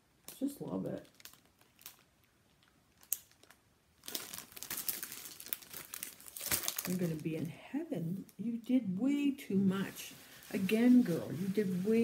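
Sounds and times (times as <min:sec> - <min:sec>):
plastic packaging crinkling: 0:00.1 - 0:07.6, 0:09.5 - 0:12.0.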